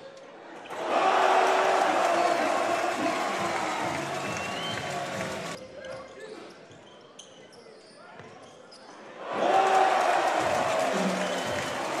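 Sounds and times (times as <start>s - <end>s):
crowd cheering: 0.7s - 5.6s, 9.2s - 12.0s
shoes squeaking on hardwood court: 5.6s - 9.0s.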